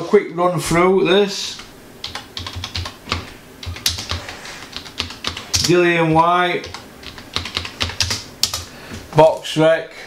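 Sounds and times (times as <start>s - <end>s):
computer keyboard typing: 1.6s - 5.9s, 6.5s - 8.7s.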